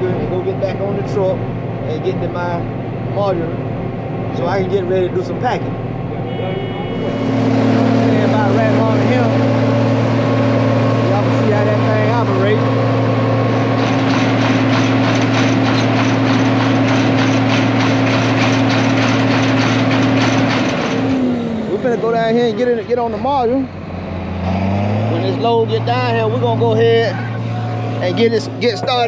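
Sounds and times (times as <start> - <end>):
cotton picker engine humming: 0.0 - 29.0.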